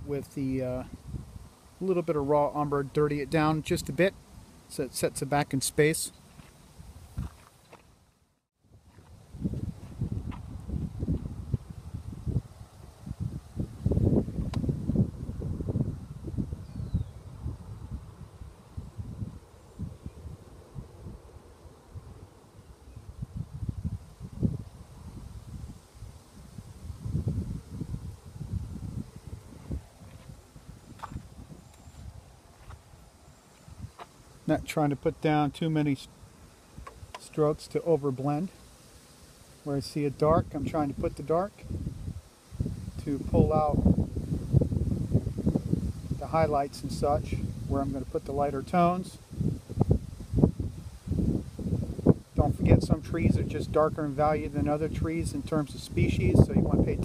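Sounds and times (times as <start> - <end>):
wind buffeting microphone: 0.8 - 1.6, 6.4 - 7.4, 8.7 - 34.0, 40.1 - 57.0.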